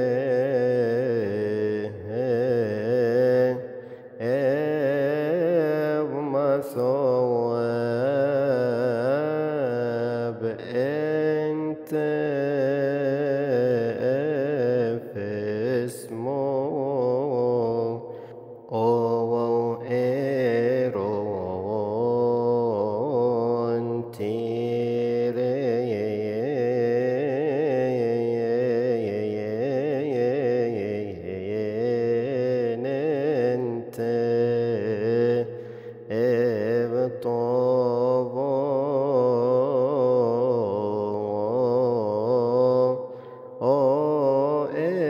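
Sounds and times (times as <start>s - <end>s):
man chanting a hymn: 0.0s - 45.0s.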